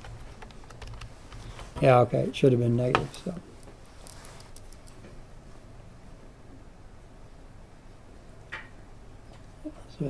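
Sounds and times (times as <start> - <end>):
computer keyboard keys clicking: 0.0 - 1.6.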